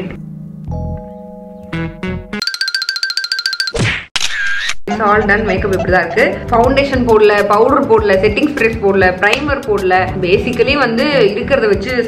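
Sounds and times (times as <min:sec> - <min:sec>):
fast pulsing electronic tone: 0:04.9 - 0:06.9.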